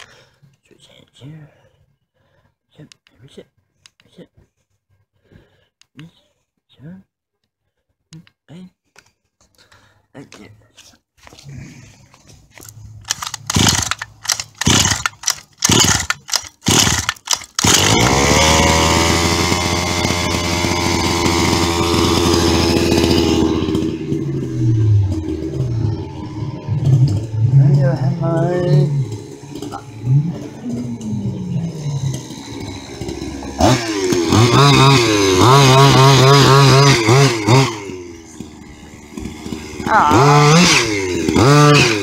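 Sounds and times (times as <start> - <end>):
two-stroke engine cranking: 12.6 - 42.0
two-stroke engine running: 13.0 - 42.0.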